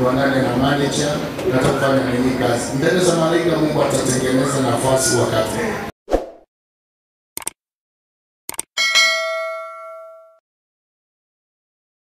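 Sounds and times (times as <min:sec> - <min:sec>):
bright bell ding: 0:08.8 - 0:10.4.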